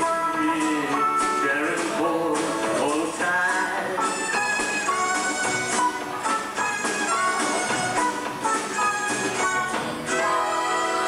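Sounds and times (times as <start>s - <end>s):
live country band playing: 0.0s - 11.0s.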